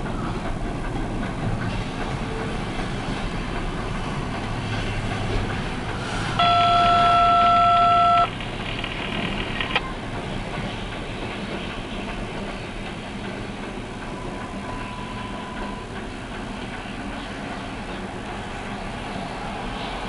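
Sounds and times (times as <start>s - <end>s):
steam locomotive running: 0.0s - 20.0s
loud steady tone: 6.4s - 8.4s.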